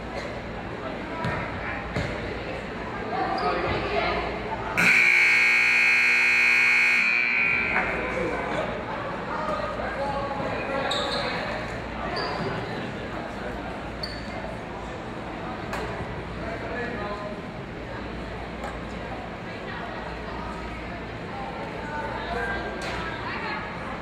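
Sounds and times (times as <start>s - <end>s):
background chatter: 0.0s - 24.0s
scoreboard buzzer blaring: 4.8s - 8.6s.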